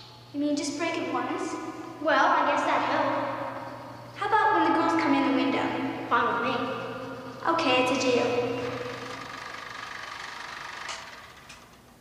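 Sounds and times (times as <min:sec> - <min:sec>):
film viewer mechanical clatter: 0:08.6 - 0:11.8.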